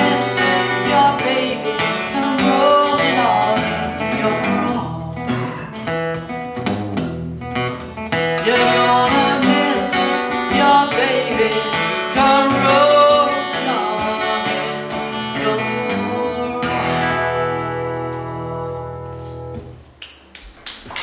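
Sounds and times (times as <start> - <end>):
woman singing: 0.0 - 5.3, 8.4 - 19.3
acoustic guitar strumming: 0.0 - 19.8.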